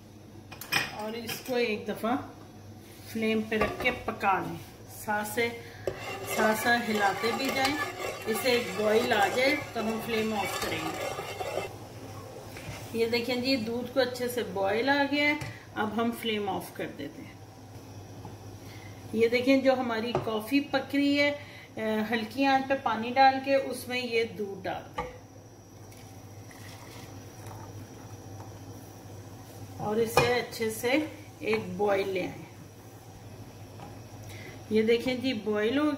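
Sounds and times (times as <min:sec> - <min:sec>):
steady low hum: 0:01.7 - 0:19.6
spoon scraping a saucepan: 0:05.8 - 0:11.7.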